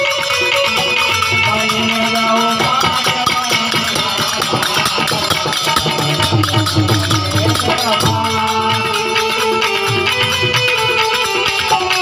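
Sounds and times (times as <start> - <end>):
folk music with fast percussion: 0.0 - 12.0.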